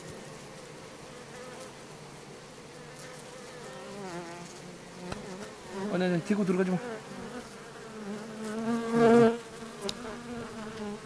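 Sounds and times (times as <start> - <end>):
honeybees buzzing: 0.0 - 11.0
single bee buzz wavering in pitch: 2.7 - 11.0.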